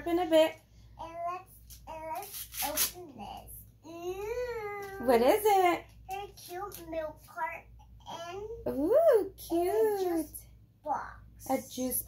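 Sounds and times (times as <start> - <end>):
young child speaking: 1.0 - 5.0, 6.0 - 8.7, 10.8 - 11.4.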